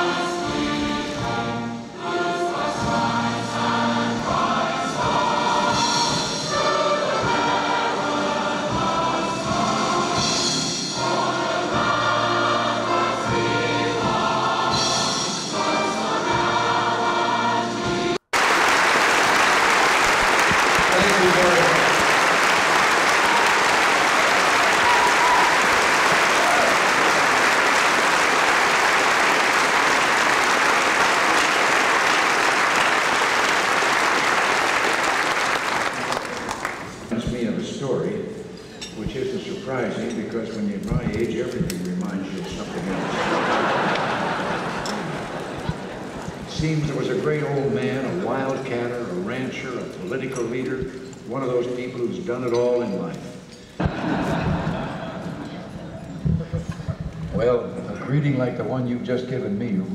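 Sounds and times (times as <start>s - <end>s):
choir singing with accompaniment: 0.0s - 18.2s, 42.6s - 47.1s, 53.8s - 56.4s
audience applauding: 18.3s - 37.1s, 42.5s - 46.7s.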